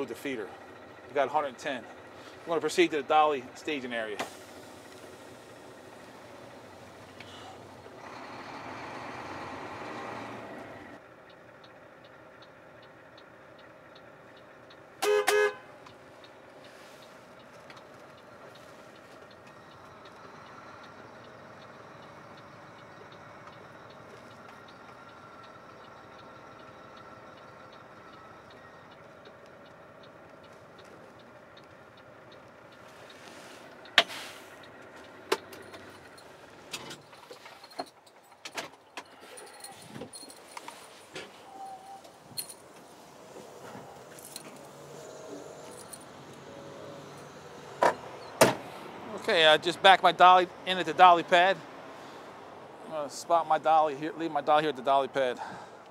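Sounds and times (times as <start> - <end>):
vehicle horn toot: 15.0 - 15.7.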